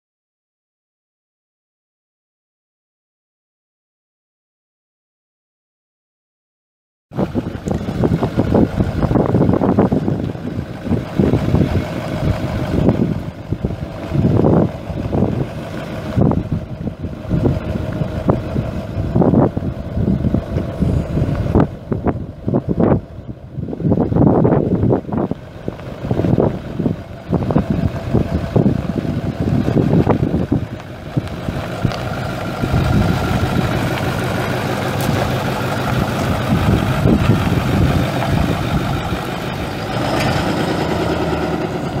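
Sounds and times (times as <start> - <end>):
diesel truck engine running: 7.1 - 42.0.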